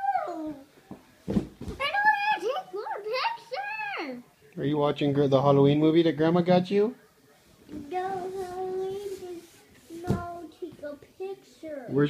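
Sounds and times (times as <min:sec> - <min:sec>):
rustling: 0:07.4 - 0:11.0.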